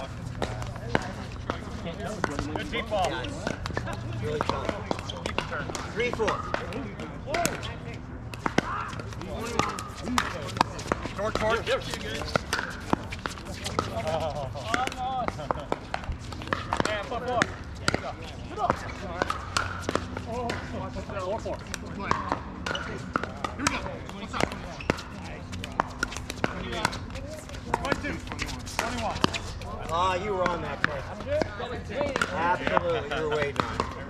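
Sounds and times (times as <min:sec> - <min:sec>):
paddles hitting plastic ball: 0:00.2 - 0:07.6, 0:08.3 - 0:20.8, 0:21.5 - 0:34.0.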